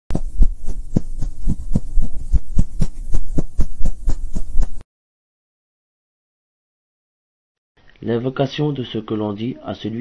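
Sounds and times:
rhythmic low thumps: 0.1s - 4.8s.

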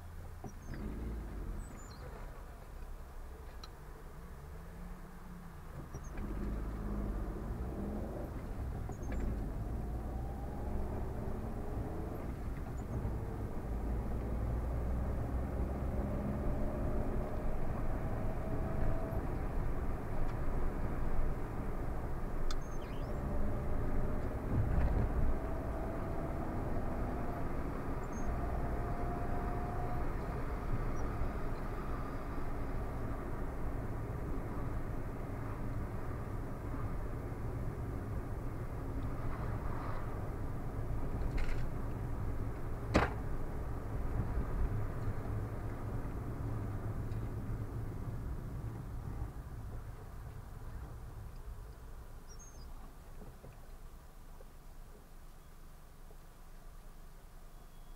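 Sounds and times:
car engine and tyre noise: 0.0s - 57.9s.

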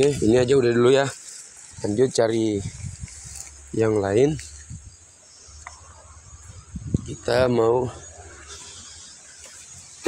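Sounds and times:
insect hiss: 0.0s - 10.0s.

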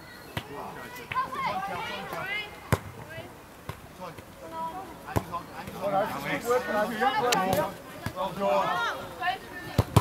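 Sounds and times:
football being kicked: 9.8s - 10.0s.

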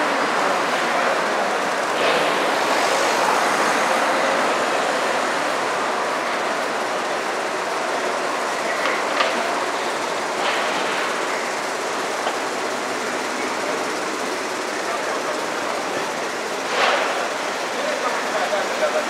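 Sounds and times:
city street noise: 0.0s - 19.0s.

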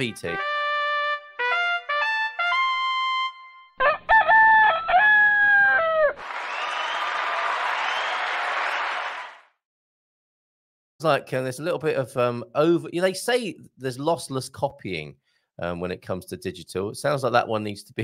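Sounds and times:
rooster crow: 3.8s - 9.2s.

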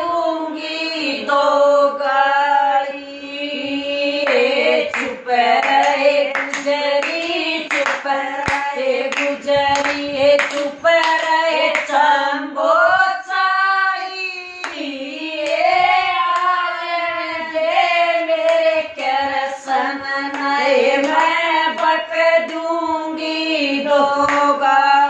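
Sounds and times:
women singing devotional song: 0.0s - 25.0s
hands clapping in time: 5.0s - 12.0s.

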